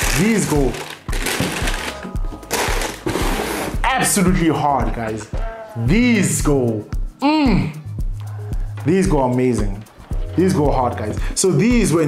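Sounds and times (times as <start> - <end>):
tissue paper rustling: 0.0 - 3.7
background music with steady beat: 0.0 - 12.0
shoebox lid closing: 2.5 - 3.7
man speaking: 3.8 - 7.0, 8.8 - 12.0.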